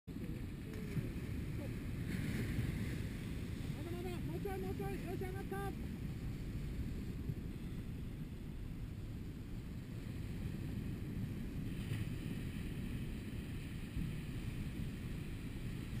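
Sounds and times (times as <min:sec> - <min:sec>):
wind buffeting microphone: 0:00.1 - 0:16.0.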